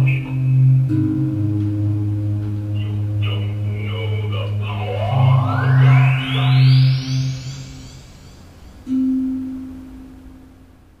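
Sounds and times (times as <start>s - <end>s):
held low synthesizer note: 2.9s - 8.4s
synthesizer sweep rising in pitch: 4.5s - 8.6s.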